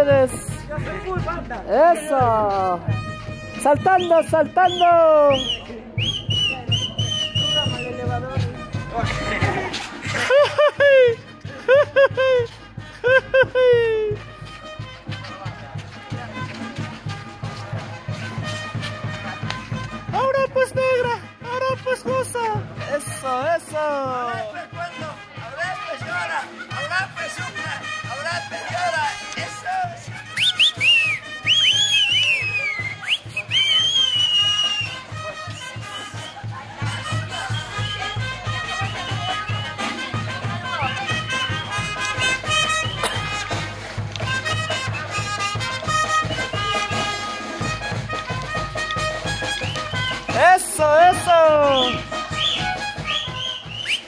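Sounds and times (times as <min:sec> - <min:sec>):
bass drum beat: 0:00.0 - 0:26.9, 0:29.8 - 0:54.0
brass band wind notes: 0:02.1 - 0:05.3, 0:06.0 - 0:10.2, 0:14.2 - 0:22.0, 0:24.6 - 0:54.0
person whistling loudly: 0:04.0 - 0:08.0, 0:30.3 - 0:36.4, 0:51.6 - 0:54.0.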